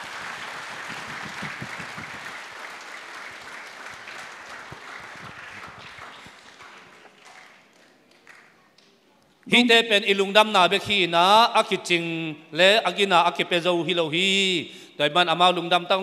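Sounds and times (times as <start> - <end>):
congregation applauding: 0.0 - 8.9.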